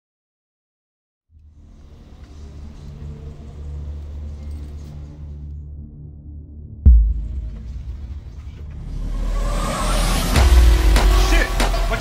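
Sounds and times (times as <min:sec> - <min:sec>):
low rumbling drone: 0:01.4 - 0:12.0.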